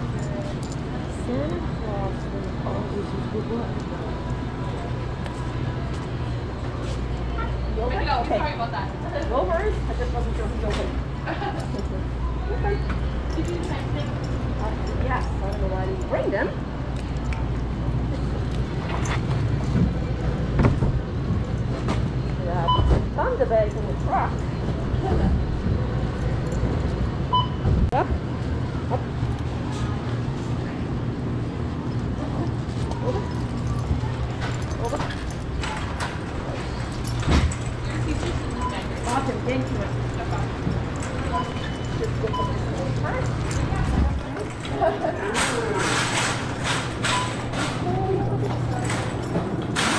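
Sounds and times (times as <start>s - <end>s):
faint voices: 0.0s - 27.3s, 27.9s - 49.9s.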